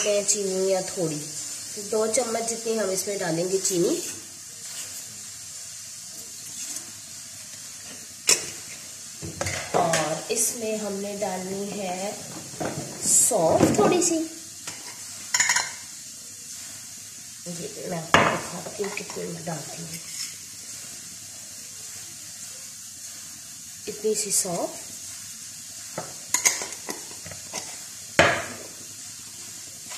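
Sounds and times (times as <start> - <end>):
gas burner hissing: 0.0 - 29.9.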